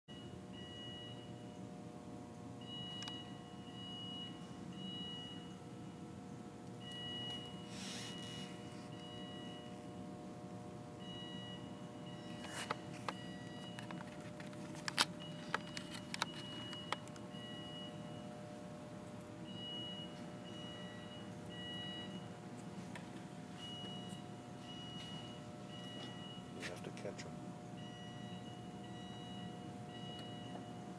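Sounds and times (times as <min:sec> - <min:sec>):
steady electrical hum: 0:00.1 - 0:30.9.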